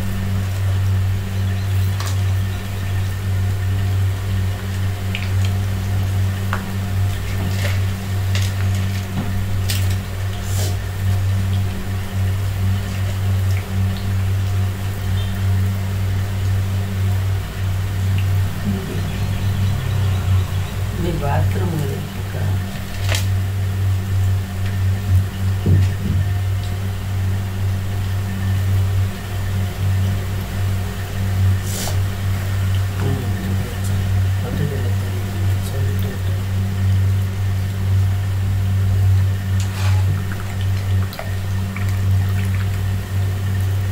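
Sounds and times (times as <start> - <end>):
oil sizzling and bubbling: 0.0 - 43.9
sharp crackles of frying: 0.0 - 43.9
steady low hum: 0.0 - 43.9.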